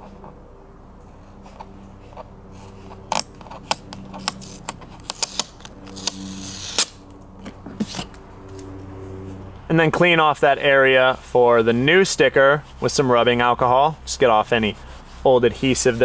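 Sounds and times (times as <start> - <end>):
steady low hum: 0.0 - 16.0
sticker tearing hiss: 3.1 - 7.0.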